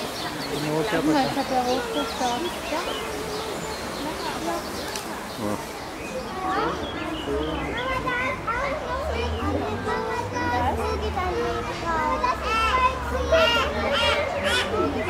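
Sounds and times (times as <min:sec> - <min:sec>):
children chattering and calling out: 0:00.0 - 0:15.0.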